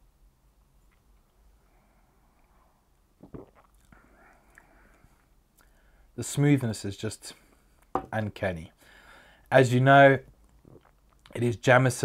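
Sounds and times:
soft breath: 0:01.4 - 0:02.9, 0:03.9 - 0:06.2, 0:08.8 - 0:09.5
wet lip and tongue clicks: 0:10.4 - 0:11.4.

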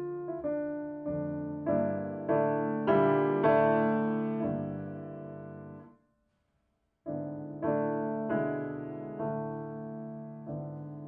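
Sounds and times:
grand piano chords: 0:00.0 - 0:05.9, 0:07.1 - 0:11.0.

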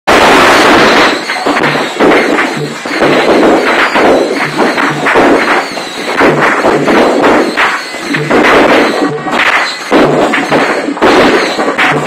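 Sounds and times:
firecrackers crackling: 0:00.1 - 0:12.0.

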